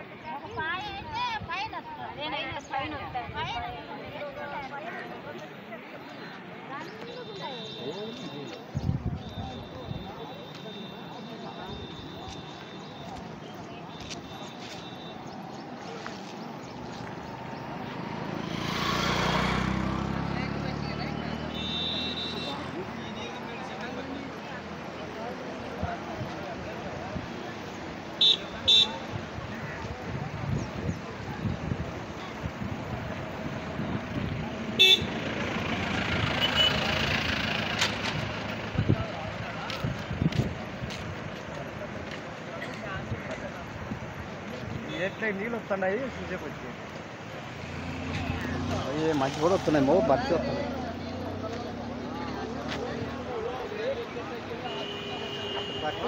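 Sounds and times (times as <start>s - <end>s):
indistinct chatter: 0.0s - 56.0s
vehicle horn toot: 21.5s - 22.7s, 28.2s - 29.0s, 34.8s - 35.2s, 36.3s - 37.0s, 54.6s - 56.0s.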